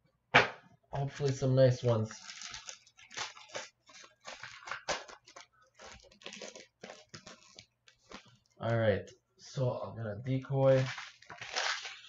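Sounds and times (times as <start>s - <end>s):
foil wrapper crinkling and tearing: 1.0s - 8.9s, 10.6s - 12.0s.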